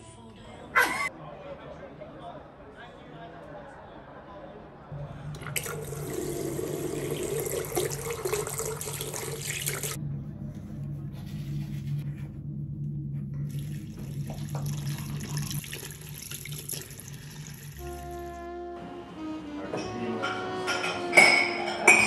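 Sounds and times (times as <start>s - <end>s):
music: 0.0s - 0.8s, 17.7s - 22.0s
tap water running into sink: 5.4s - 10.0s, 13.5s - 18.2s.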